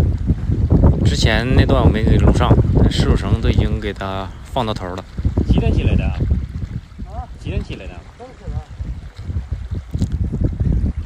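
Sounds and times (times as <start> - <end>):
wind buffeting microphone: 0.0 - 11.0
man's voice: 7.0 - 8.7.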